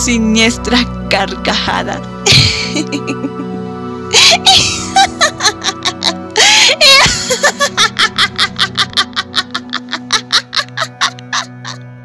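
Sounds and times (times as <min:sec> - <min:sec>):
background music: 0:00.0 - 0:12.0
person laughing sinisterly: 0:02.2 - 0:12.0.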